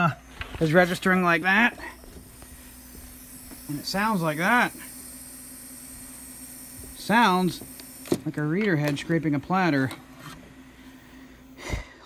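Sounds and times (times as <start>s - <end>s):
hard drive humming: 0.0s - 12.0s.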